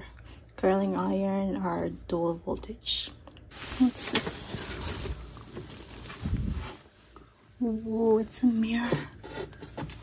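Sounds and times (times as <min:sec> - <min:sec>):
sleeve rustling against camera: 0:03.5 - 0:07.1.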